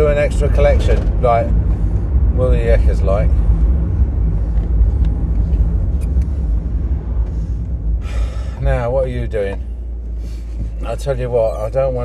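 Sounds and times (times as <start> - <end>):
car cabin road rumble: 0.0 - 12.0.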